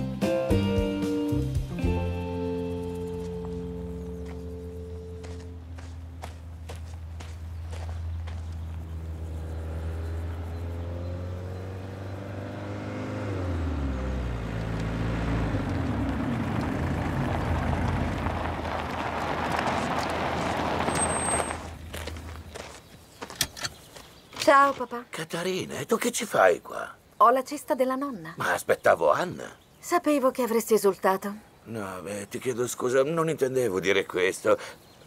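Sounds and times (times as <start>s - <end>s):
van engine: 0.0s - 23.7s
tyres on gravel: 1.8s - 26.2s.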